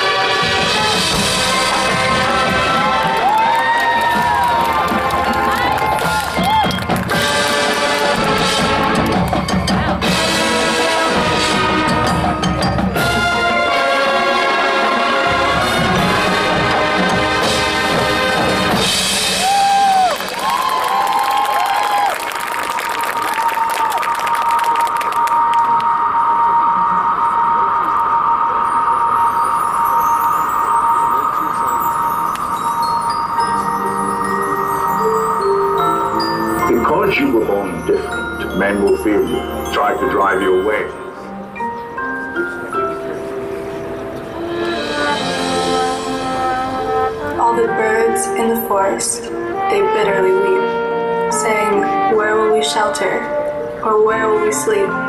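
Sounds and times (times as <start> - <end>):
marching band playing: 0.0 - 55.0
crowd cheering and clapping: 1.7 - 10.0, 19.1 - 26.2
glockenspiel and mallet runs: 11.8 - 13.2, 28.5 - 47.0.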